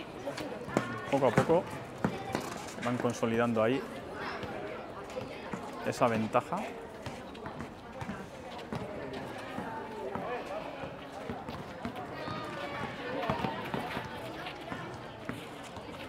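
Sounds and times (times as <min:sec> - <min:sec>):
basketball bouncing on asphalt: 0:00.6 - 0:03.0, 0:04.4 - 0:16.0.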